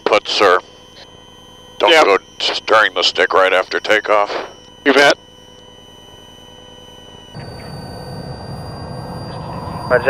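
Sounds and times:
high-pitched electronic whine: 0:00.0 - 0:10.0.

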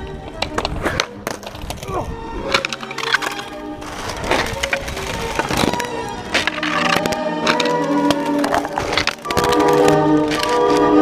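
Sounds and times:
skateboard deck clacking: 0:00.0 - 0:11.0.

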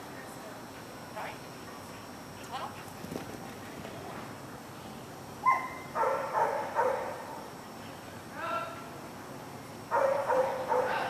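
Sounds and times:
dog barking: 0:05.4 - 0:07.4, 0:09.9 - 0:11.0.

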